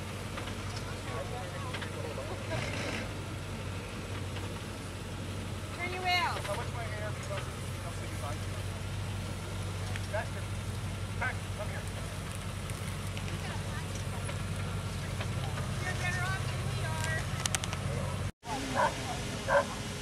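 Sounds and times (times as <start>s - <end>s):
car engine running at low revs: 0.0s - 20.0s.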